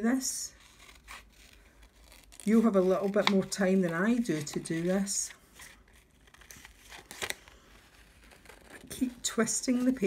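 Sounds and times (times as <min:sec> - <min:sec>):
scissors snipping paper: 0:00.7 - 0:05.2.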